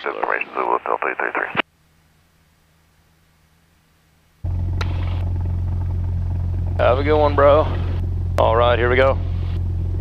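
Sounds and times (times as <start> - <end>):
airplane engine drone in cabin: 4.4 - 10.0.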